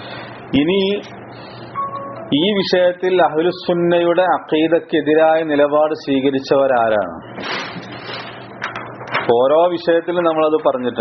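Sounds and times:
low background hum: 0.0s - 11.0s
man lecturing: 2.2s - 7.2s.

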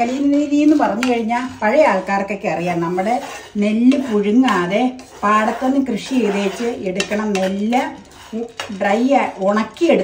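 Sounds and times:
spatula scraping frying pan: 0.0s - 10.0s
woman talking: 0.0s - 10.0s.

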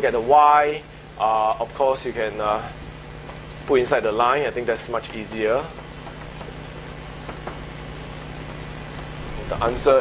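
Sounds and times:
low room hum with hiss: 0.0s - 10.0s
faint light taps: 7.2s - 7.7s.

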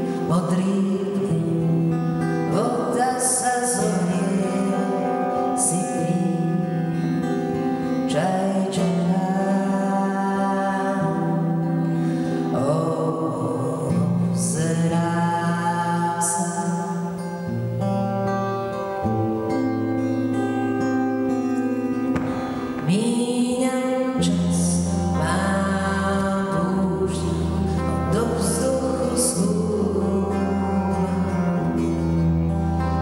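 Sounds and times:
woman singing: 0.0s - 17.6s, 22.4s - 33.0s
strummed acoustic guitar: 0.0s - 33.0s
electric bass guitar: 17.6s - 23.2s, 24.1s - 33.0s.

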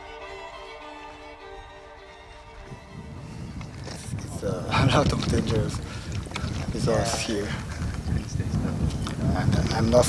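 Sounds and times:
steady low rumble: 1.4s - 10.0s.

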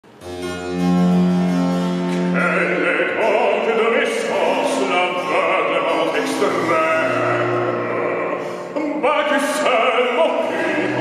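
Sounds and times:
harpsichord: 0.0s - 11.0s.

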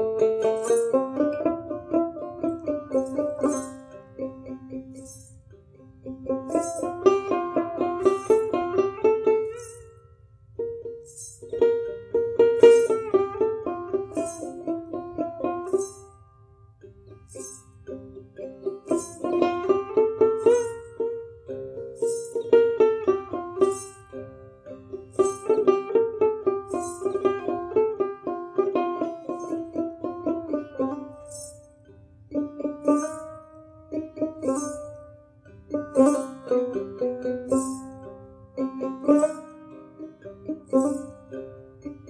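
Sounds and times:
plucked string melody: 0.0s - 42.0s.

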